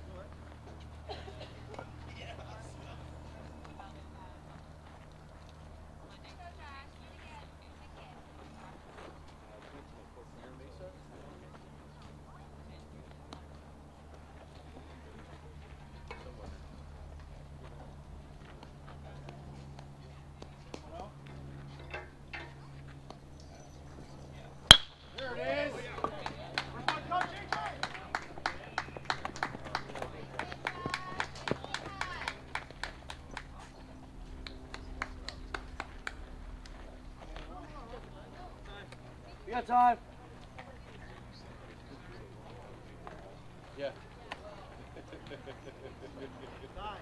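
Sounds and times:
bat striking baseball: 24.7 - 25.4
people clapping: 25.9 - 36.8.

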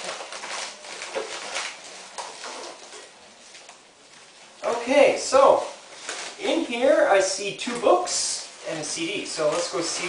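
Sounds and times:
envelope tearing and rustling: 0.0 - 3.8, 4.4 - 10.0.

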